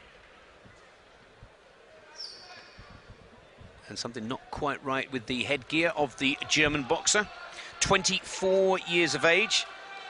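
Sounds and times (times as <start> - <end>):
arena hall ambience: 0.0 - 10.0
soft low thuds: 2.8 - 3.8
man commentating: 3.8 - 10.0.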